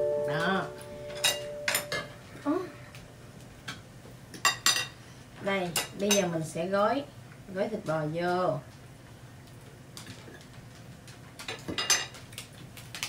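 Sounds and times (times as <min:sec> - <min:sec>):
person speaking: 0:00.0 - 0:02.8
tableware clinking on plates: 0:01.1 - 0:02.2, 0:11.7 - 0:12.1.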